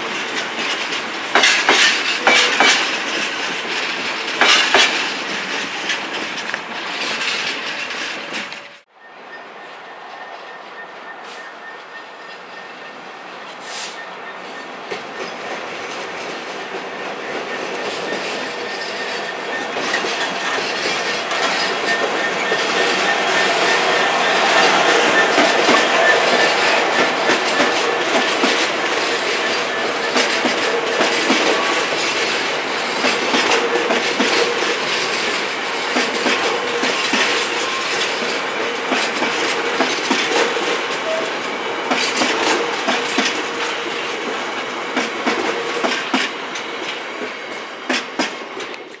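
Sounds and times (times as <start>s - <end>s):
wheels clattering over rails: 0.0s - 8.8s, 14.5s - 41.2s
freight train rumble: 0.0s - 49.0s.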